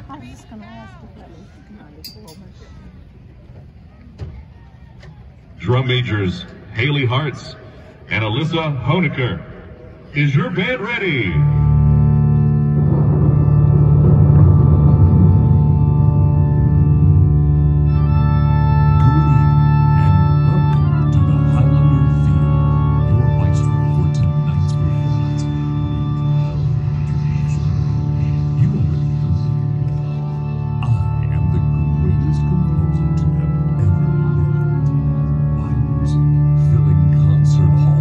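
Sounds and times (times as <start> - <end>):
organ-like keyboard chords: 2.6 - 38.0
held-note keyboard melody: 11.1 - 38.0.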